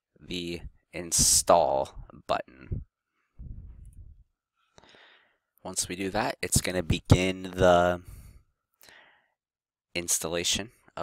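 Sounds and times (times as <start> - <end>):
man speaking: 0.2 - 2.9, 5.7 - 8.1
soft breath drawn in: 3.2 - 5.4.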